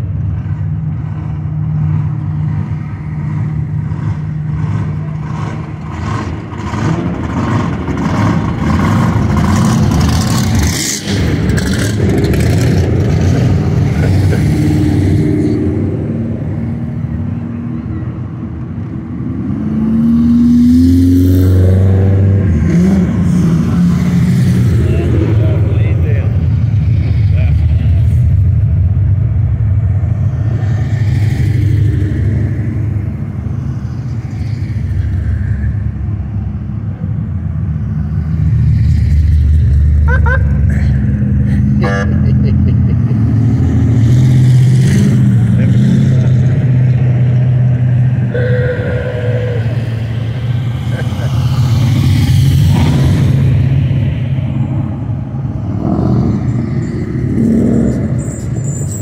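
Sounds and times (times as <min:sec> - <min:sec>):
car engines rumbling past: 0:00.0 - 0:59.0
car engine revving: 0:00.6 - 0:17.4, 0:38.4 - 0:58.9
crowd voices: 0:48.4 - 0:51.3.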